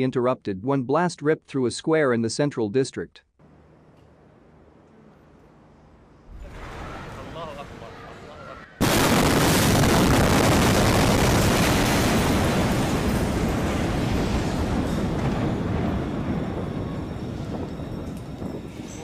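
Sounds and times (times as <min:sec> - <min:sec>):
loud explosion blast: 0:06.3 - 0:07.8, 0:08.8 - 0:19.0.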